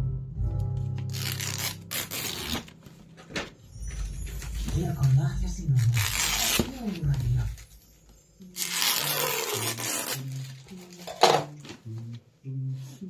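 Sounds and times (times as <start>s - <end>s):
background music with low notes: 0.0s - 13.0s
foil wrapping paper crinkling: 1.1s - 2.8s, 5.7s - 7.6s, 8.6s - 11.1s.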